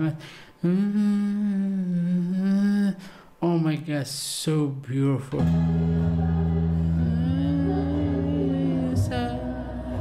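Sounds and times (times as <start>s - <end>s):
man humming low note: 0.0s - 2.9s, 5.4s - 10.0s.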